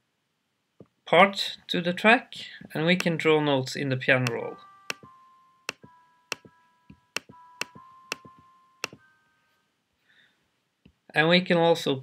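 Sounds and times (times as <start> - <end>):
mouse clicks: 4.2 - 5.1, 5.7 - 6.5, 7.1 - 9.0
synthesized piano notes: 4.3 - 9.1.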